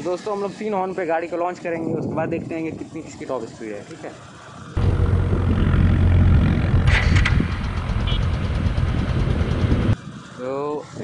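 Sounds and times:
wind rush on microphone: 0:01.5 - 0:03.3, 0:04.8 - 0:11.0
motorcycle engine running: 0:04.8 - 0:10.0.

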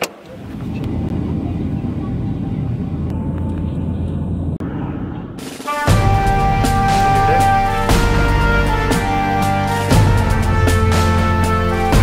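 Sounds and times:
airliner cabin rumble: 0:00.0 - 0:11.7.

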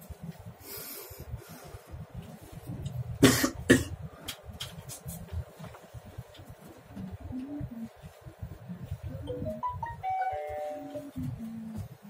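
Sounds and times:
person coughing: 0:03.2 - 0:04.0
elevator hum: 0:08.8 - 0:12.0.

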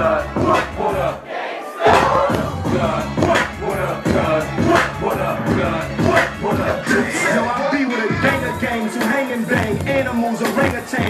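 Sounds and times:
hip-hop dj mix: 0:00.0 - 0:01.2, 0:01.8 - 0:11.0
crowd shouting: 0:00.0 - 0:09.6.

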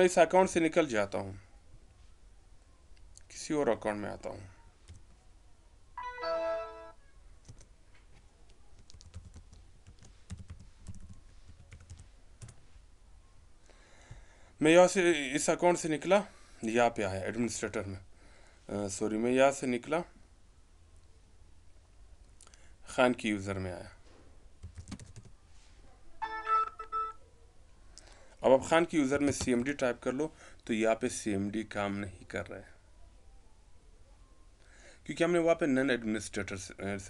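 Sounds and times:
keyboard keys clicking: 0:08.8 - 0:12.6, 0:24.6 - 0:25.3.

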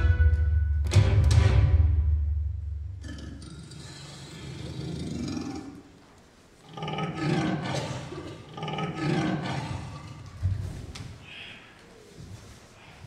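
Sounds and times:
leopard roaring: 0:03.0 - 0:05.9, 0:06.7 - 0:10.4.

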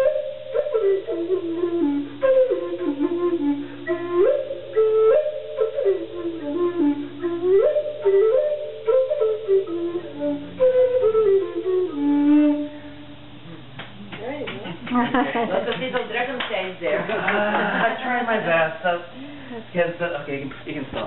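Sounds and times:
wooden flute melody: 0:00.0 - 0:13.3.

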